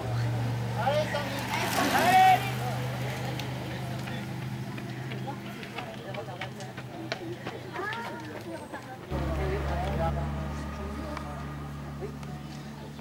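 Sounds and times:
low vehicle engine hum: 0:00.0 - 0:08.0, 0:08.6 - 0:13.0.

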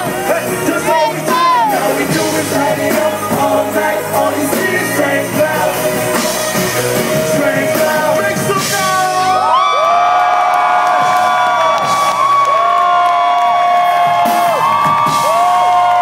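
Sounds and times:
audience cheering and whooping: 0:00.0 - 0:02.2, 0:06.2 - 0:16.0.

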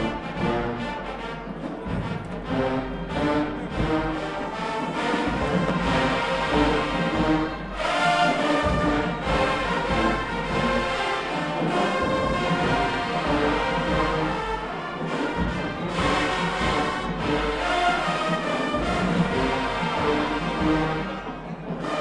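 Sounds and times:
marching band brass chords: 0:00.0 - 0:22.0.

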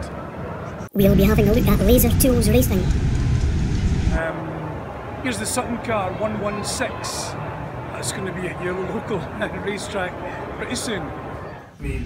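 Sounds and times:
crowded hall background noise: 0:00.0 - 0:02.9, 0:04.2 - 0:12.0.

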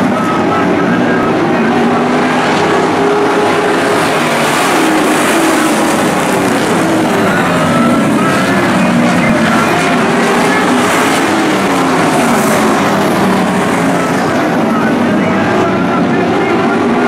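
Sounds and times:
race car engines at high revs: 0:00.0 - 0:17.0.

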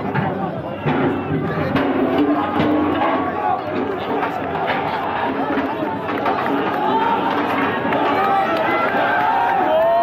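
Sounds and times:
crowd voices chattering: 0:00.0 - 0:10.0
people shouting: 0:00.6 - 0:10.0.

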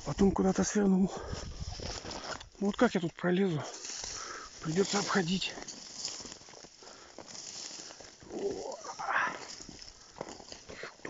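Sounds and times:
footsteps through snowy brush: 0:00.0 - 0:11.0.

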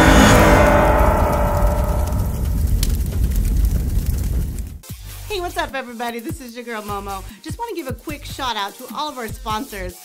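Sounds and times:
cinematic impact hit: 0:00.0 - 0:04.8
deep rumble: 0:00.0 - 0:04.8.

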